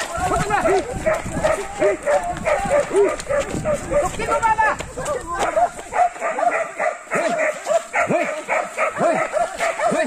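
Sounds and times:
men shouting in unison: 0.0s - 10.0s.

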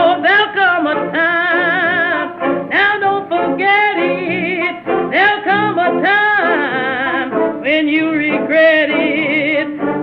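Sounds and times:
small jazz band playing: 0.0s - 10.0s
woman singing blues with vibrato: 0.0s - 10.0s.

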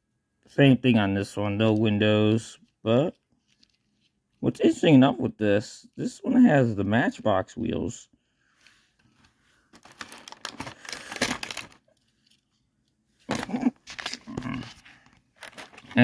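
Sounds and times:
plastic packaging crinkling: 9.7s - 12.4s, 13.3s - 16.0s.

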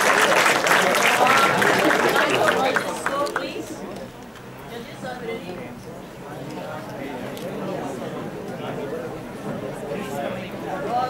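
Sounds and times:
audience applauding: 0.0s - 3.8s
voices: 0.0s - 11.0s.

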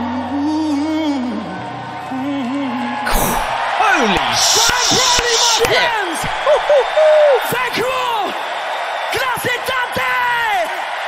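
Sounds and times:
whoops: 0.0s - 8.4s
crowd cheering and screaming: 0.0s - 11.0s.

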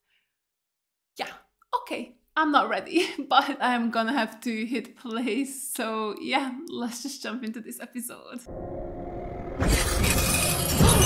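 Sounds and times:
low rumble: 8.5s - 11.0s
loud shattering crash: 9.5s - 11.0s.

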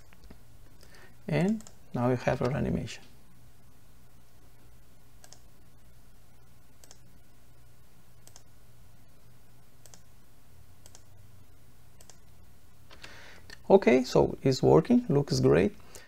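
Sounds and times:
computer mouse clicks: 0.0s - 1.8s, 5.2s - 5.5s, 6.8s - 7.1s, 8.2s - 8.5s, 9.8s - 10.1s, 10.8s - 11.1s, 12.0s - 12.2s
low steady room hum: 0.0s - 16.0s.

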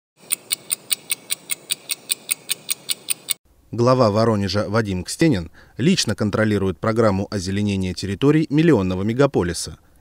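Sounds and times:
sharp fast ticks: 0.2s - 3.4s
steady low background noise: 3.1s - 10.0s.

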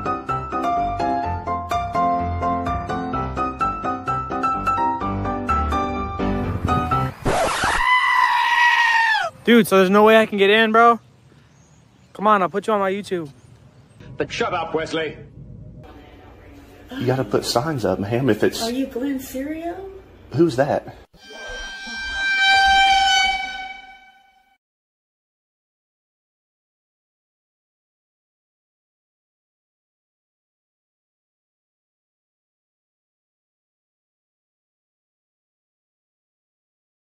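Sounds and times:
loud scream: 7.3s - 9.4s
long horn-like blast: 21.2s - 24.6s.

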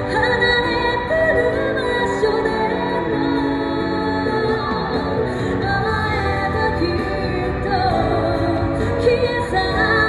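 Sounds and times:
musical accompaniment: 0.0s - 10.0s
woman singing into microphone: 0.0s - 10.0s.

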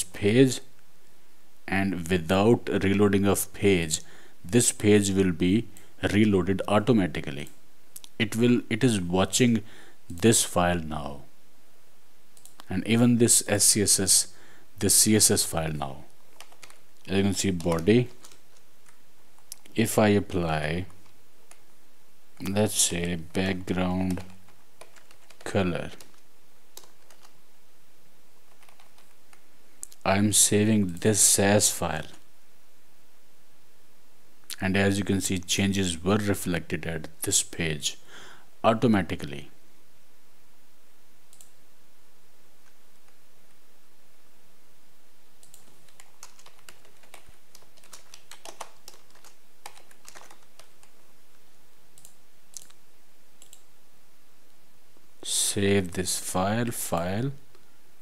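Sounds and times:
faint hiss: 0.0s - 47.8s
keyboard keystrokes: 45.4s - 50.9s.

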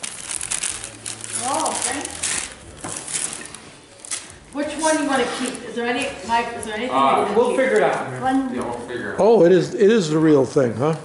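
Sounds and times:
wrapping paper rustling and crinkling: 0.0s - 6.0s.

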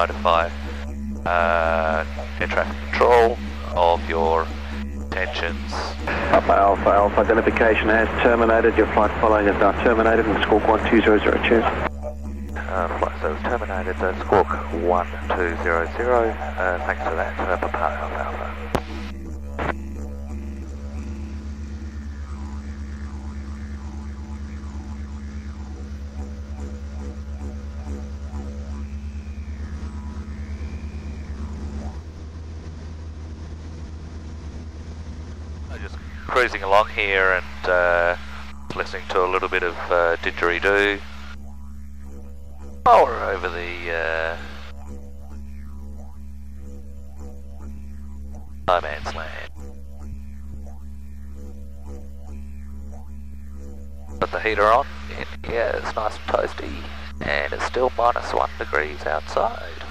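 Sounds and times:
aircraft engine drone: 0.0s - 59.9s
didgeridoo drone: 0.0s - 59.9s.

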